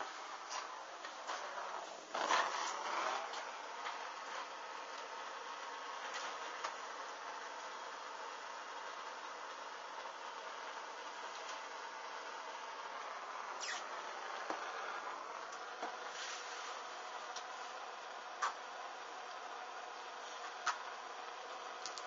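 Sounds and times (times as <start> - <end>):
blowtorch flame hissing: 0.1 - 4.8, 13.2 - 17.7.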